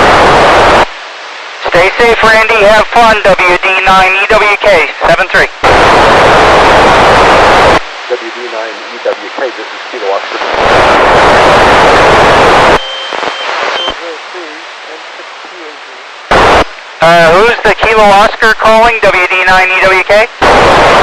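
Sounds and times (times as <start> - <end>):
loud radio hiss: 0.0 - 21.0
faint garbled radio voice: 1.6 - 21.0.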